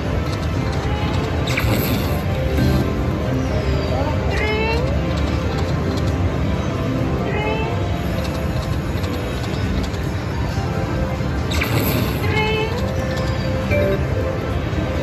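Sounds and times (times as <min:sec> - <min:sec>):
slot machine gliding electronic tones: 0:00.0 - 0:06.4, 0:11.3 - 0:15.0
background music: 0:00.0 - 0:15.0.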